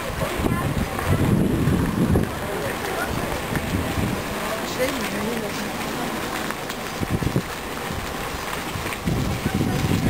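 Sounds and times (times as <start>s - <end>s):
steady outdoor hiss: 0.0s - 10.0s
wind rumbling on microphone: 0.0s - 10.0s.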